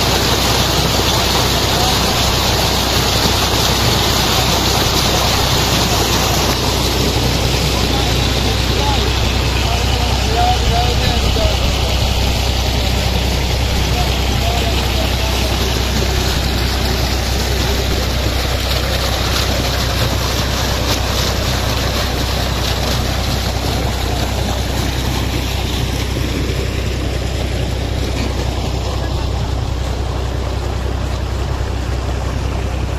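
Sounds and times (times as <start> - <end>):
pump engine humming: 0.0 - 32.9
water gushing and splashing: 0.0 - 32.9.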